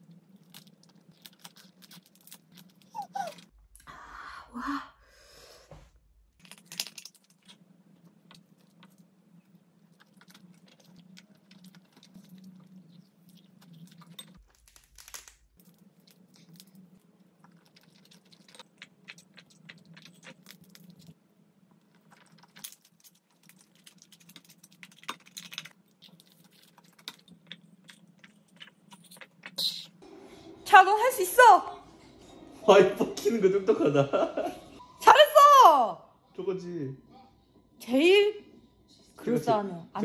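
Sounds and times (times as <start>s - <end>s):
chewing and crunching crab shell: 0.0s - 3.5s, 6.4s - 29.6s.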